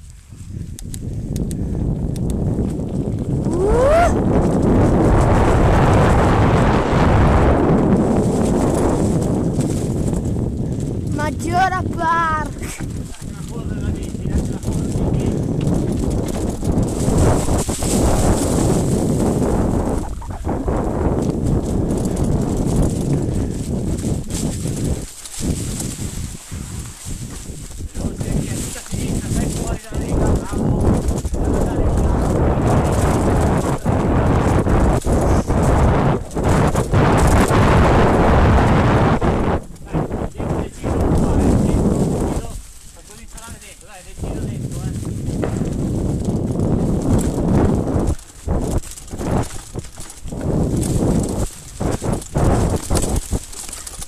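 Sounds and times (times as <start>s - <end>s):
wind rushing on microphone: 0.0s - 54.0s
bike rattling over bumps: 0.1s - 54.0s
tyres rolling through leaves: 3.3s - 20.0s, 20.7s - 54.0s.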